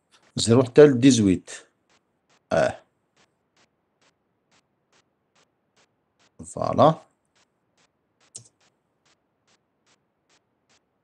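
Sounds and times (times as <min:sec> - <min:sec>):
faint regular ticks: 0:00.1 - 0:11.0.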